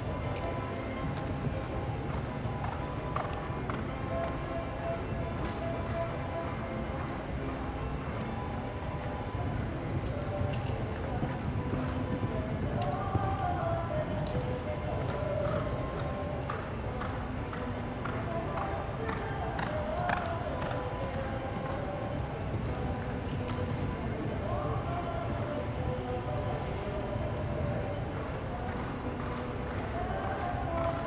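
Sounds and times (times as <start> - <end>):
background music: 0.0 - 31.0
horse hoofbeats on dirt: 0.0 - 31.0.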